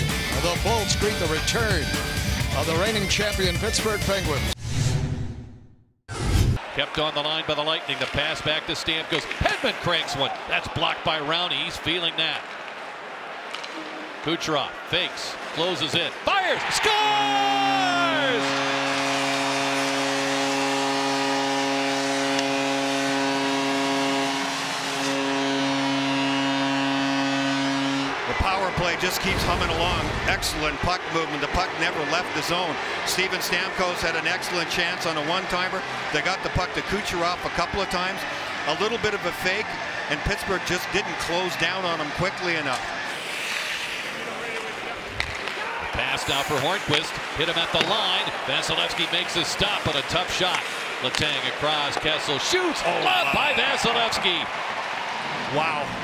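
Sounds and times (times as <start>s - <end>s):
crowd noise: 6.6s - 56.0s
arena goal horn chord: 17.6s - 29.9s, 30.8s - 42.8s.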